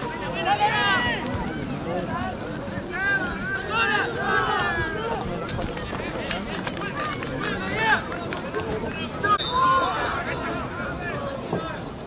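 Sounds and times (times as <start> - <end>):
dense outdoor background noise: 0.0 - 12.0
spectators talking and calling out: 0.0 - 12.0.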